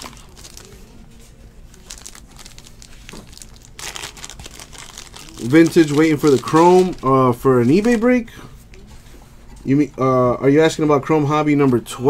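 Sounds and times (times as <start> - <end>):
plastic wrap crinkling: 0.0 - 8.2.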